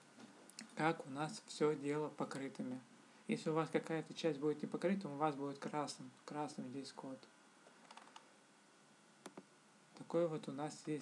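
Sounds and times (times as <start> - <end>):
faint computer clicks: 7.6 - 8.3, 9.2 - 9.5.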